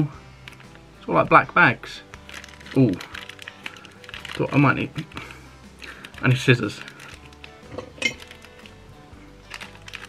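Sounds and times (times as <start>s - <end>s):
quiet background music: 0.0s - 10.0s
small handling clicks: 2.1s - 8.8s, 9.4s - 10.0s
scissors clinking: 6.0s - 8.8s, 9.4s - 10.0s.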